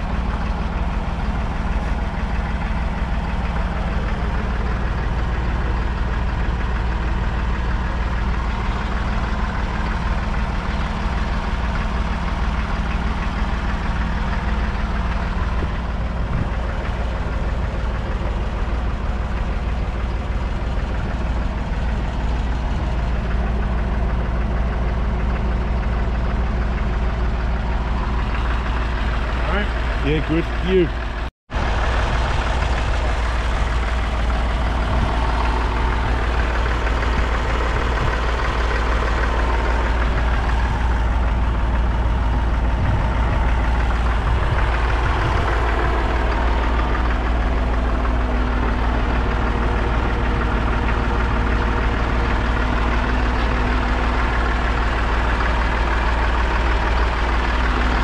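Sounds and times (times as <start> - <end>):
diesel tractor idling: 0.0 - 58.0.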